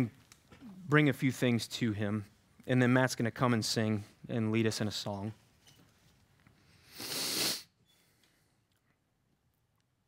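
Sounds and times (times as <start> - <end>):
man exhaling: 6.9 - 7.7.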